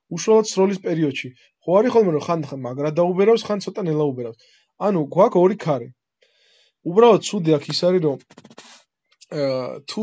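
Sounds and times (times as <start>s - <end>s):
man speaking: 0.0s - 6.0s, 6.9s - 10.0s.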